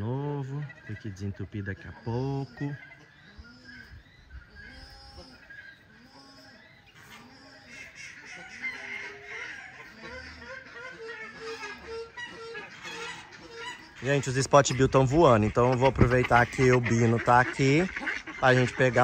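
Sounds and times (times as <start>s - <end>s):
other bird calls: 0.0s - 19.0s
waterfowl honking: 0.4s - 19.0s.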